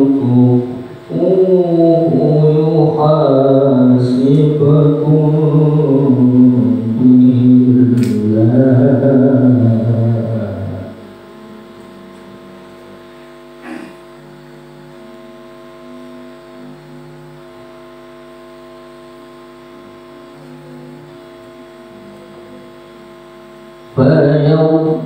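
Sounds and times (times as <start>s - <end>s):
electrical hum from speakers: 0.0s - 25.0s.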